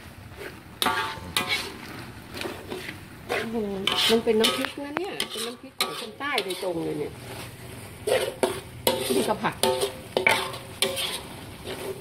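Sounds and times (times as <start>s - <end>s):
paste sizzling: 0.0s - 12.0s
spatula scraping metal wok: 0.3s - 12.0s.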